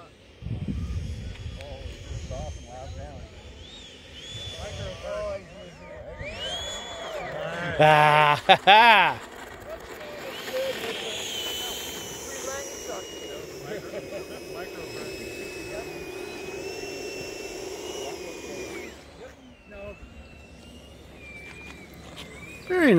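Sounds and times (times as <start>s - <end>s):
model jet fan whine: 0.0s - 22.9s.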